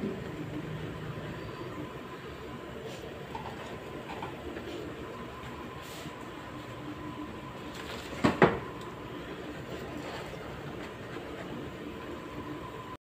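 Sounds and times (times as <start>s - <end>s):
kitchen background hum: 0.0s - 13.0s.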